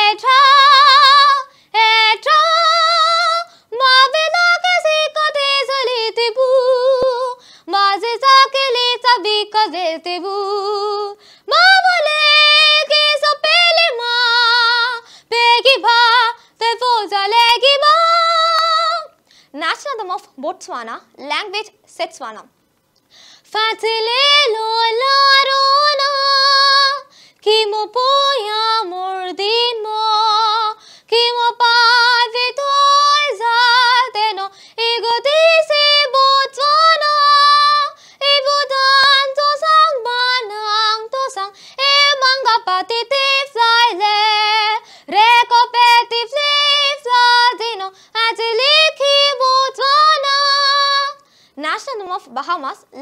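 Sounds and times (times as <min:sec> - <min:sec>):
girl singing unaccompanied: 0:00.0 - 0:53.0.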